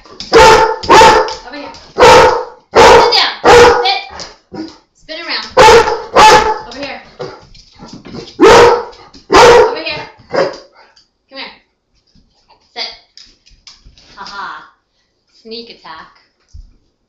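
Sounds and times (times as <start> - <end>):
dog barking: 0.2 - 4.7, 5.6 - 6.7, 8.4 - 10.7.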